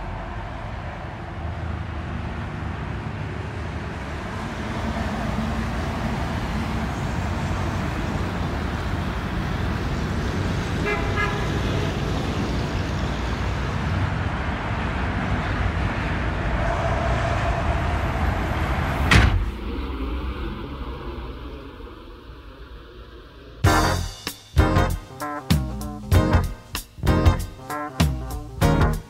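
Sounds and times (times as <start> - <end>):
road traffic noise: 0.0 - 22.9, 23.5 - 29.0
car horn toot: 10.8 - 11.5.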